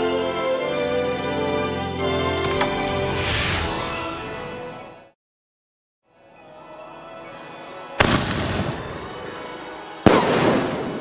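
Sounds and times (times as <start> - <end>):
background music: 0.0 - 5.2, 6.1 - 11.0
loud firework bangs: 10.0 - 11.0.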